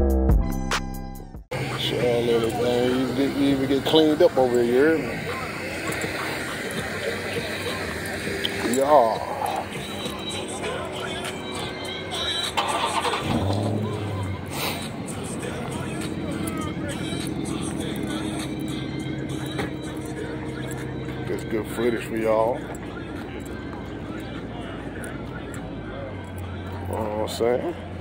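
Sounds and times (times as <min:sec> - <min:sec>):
music playing: 0:00.0 - 0:28.0
car engine running: 0:01.5 - 0:28.0
people talking: 0:01.5 - 0:28.0.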